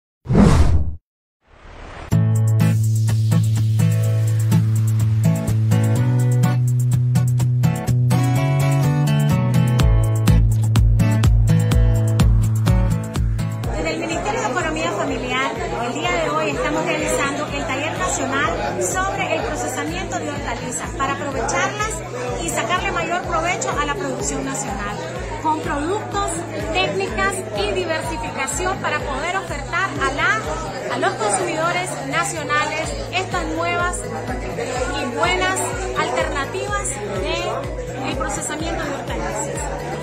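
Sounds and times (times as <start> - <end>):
swelling noise effect: 0.3 - 2.2
whoosh sound effect: 0.3 - 2.2
background music with beat: 2.1 - 13.8, 32.9 - 40.0
woman talking: 13.7 - 34.1, 34.9 - 39.5
group chatter: 13.7 - 40.0.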